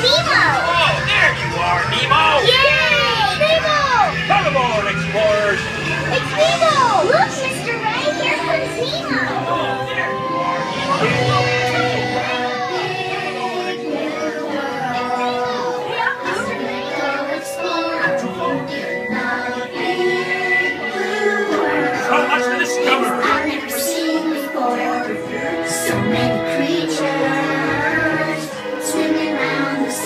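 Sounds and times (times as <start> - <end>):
people speaking: 0.0 - 19.8, 21.0 - 30.0
children talking and calling out: 0.0 - 30.0
soundtrack song with held notes: 0.0 - 30.0
people singing: 7.9 - 30.0.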